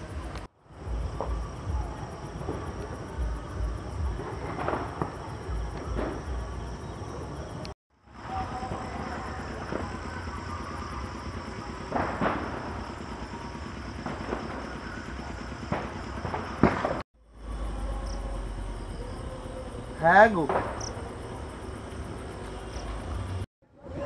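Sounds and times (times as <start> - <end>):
insects chirping: 0.0 - 24.0.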